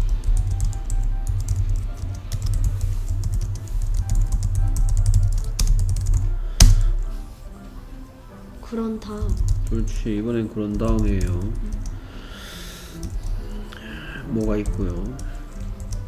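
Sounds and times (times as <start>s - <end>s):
computer keyboard typing: 0.0s - 6.8s, 9.1s - 10.0s, 10.6s - 12.0s, 12.9s - 16.0s.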